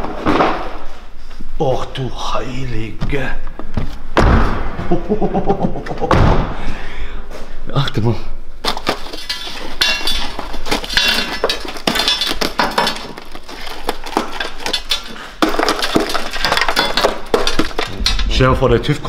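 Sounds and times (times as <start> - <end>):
rusted sheet metal cracking: 8.6 - 19.0.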